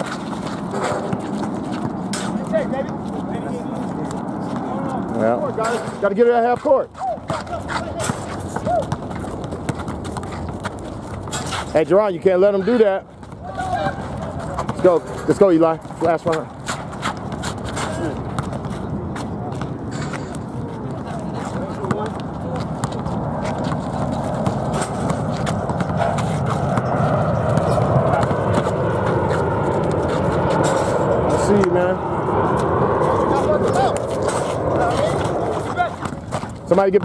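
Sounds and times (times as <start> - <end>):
basketballs bouncing on asphalt: 0.0 - 37.0
voices chattering and calling: 6.9 - 11.6, 12.5 - 15.3, 16.4 - 36.7.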